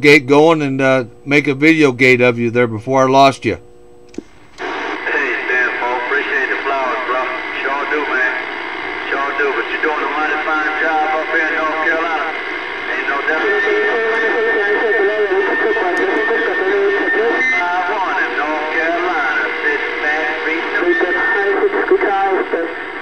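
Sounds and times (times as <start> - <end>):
radio static: 4.2 - 23.0
high radio whistle: 4.6 - 22.8
voices over radio speaker: 4.6 - 23.0.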